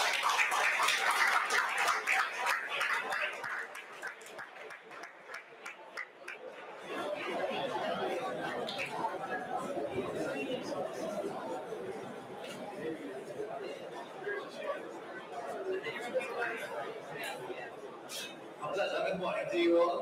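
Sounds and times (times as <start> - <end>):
audience chatter: 0.0 - 20.0.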